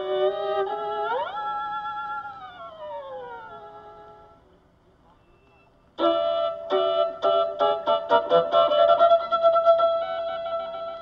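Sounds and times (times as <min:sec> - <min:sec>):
music: 0:00.0 - 0:04.5, 0:05.2 - 0:11.0
faint recording hiss: 0:00.0 - 0:11.0.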